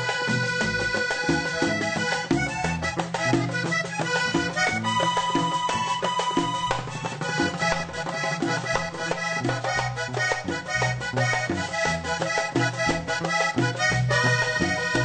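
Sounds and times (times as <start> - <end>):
button accordion: 0.0 - 15.0
electric bass line: 0.0 - 15.0
steady beat: 0.0 - 15.0.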